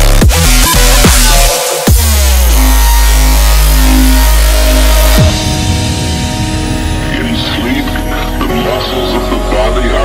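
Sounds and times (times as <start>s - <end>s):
dubstep music with heavy bass: 0.0s - 10.0s.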